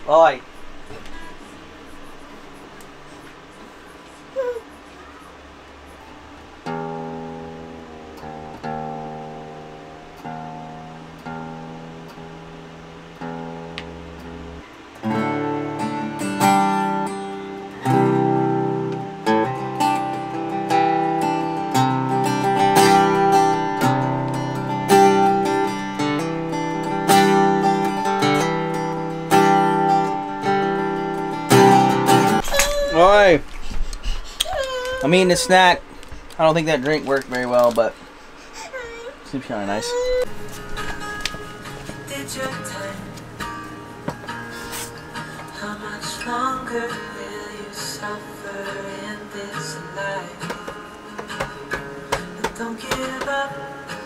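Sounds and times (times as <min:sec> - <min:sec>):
acoustic guitar chords: 0:06.2 - 0:33.4, 0:39.9 - 0:54.0.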